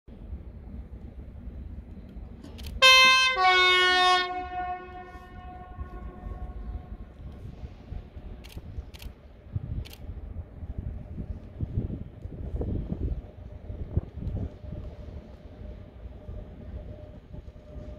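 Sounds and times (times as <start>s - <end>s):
train rumbling: 0.1s - 17.9s
two-tone locomotive air horn: 2.7s - 7.0s.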